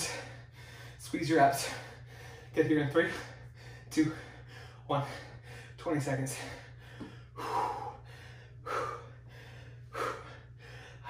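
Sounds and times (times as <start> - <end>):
man breathing heavily: 0.0 - 11.0.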